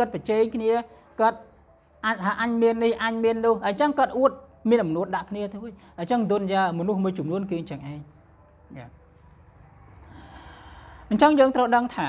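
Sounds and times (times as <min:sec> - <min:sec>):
man breathing in: 0:10.0 - 0:11.1.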